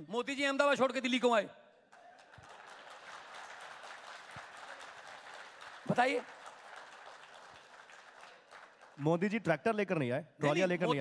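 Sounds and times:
faint audience applause: 1.9 - 9.5.

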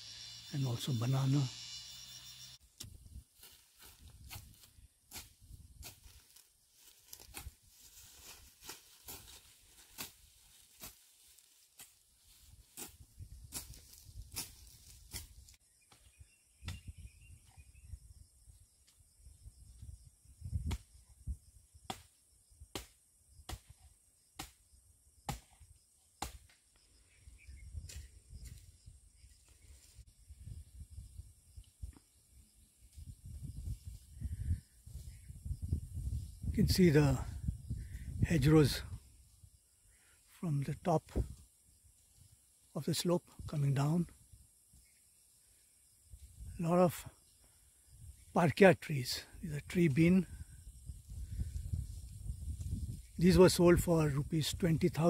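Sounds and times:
high insect chirring: 0.0 - 2.8
footsteps through grass: 2.6 - 15.6.

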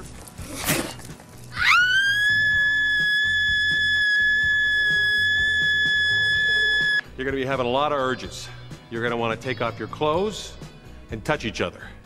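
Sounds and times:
woman screaming high-pitched: 1.6 - 7.0.

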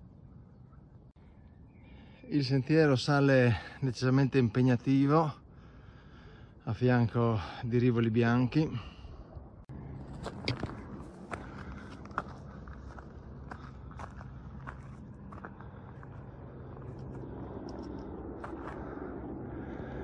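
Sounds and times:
low background hum: 0.0 - 20.0
footsteps on rocky trail: 9.9 - 19.1.

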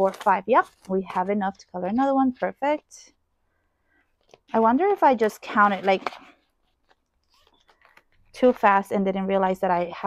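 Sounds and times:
plastic envelope crinkling: 0.0 - 1.4, 5.2 - 9.0.

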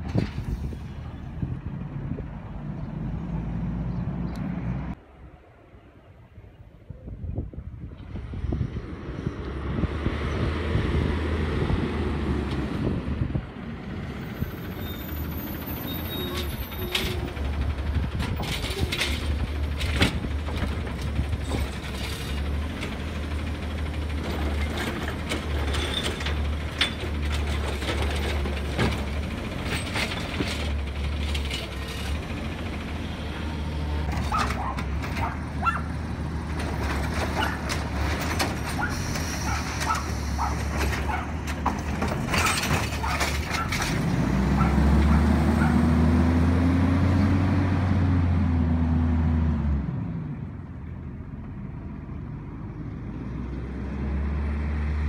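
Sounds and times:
garbage truck engine running: 14.2 - 47.4
hydraulic arm clanking: 16.0 - 23.0
air brakes hissing: 38.8 - 40.4.

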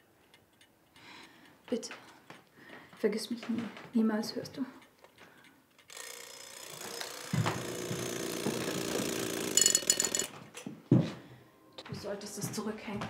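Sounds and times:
alarm clock bell ringing: 5.9 - 10.4.

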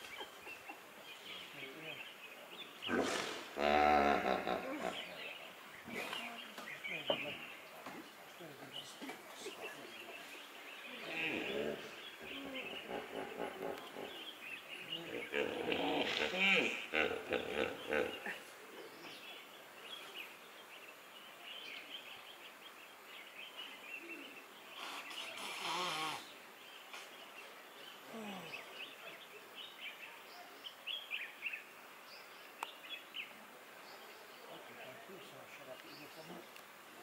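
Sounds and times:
steady hiss: 0.0 - 3.7, 4.3 - 37.0.

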